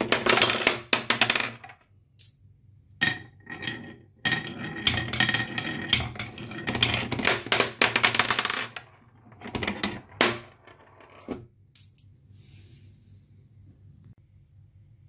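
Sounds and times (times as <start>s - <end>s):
glass marbles rolling on wood: 0.0s - 1.8s, 3.0s - 11.3s.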